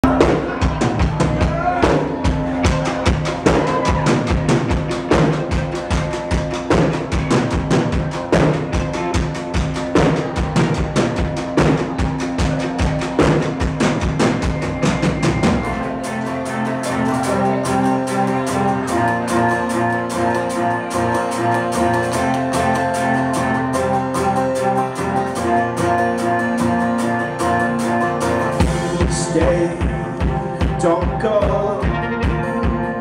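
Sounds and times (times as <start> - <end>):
drum kit fast beat: 0.0 - 26.0, 28.2 - 33.0
acoustic guitar: 0.0 - 33.0
bass: 0.0 - 33.0.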